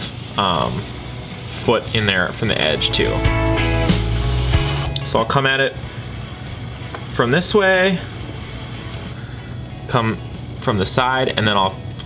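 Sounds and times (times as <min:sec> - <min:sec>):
background music: 0:00.0 - 0:12.0
potter's wheel hum: 0:00.0 - 0:12.0.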